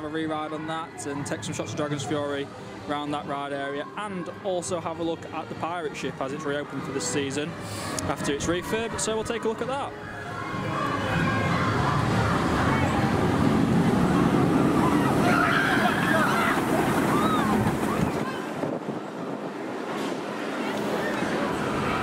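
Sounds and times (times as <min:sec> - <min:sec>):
roller coaster roaring on track: 0:09.9 - 0:22.0.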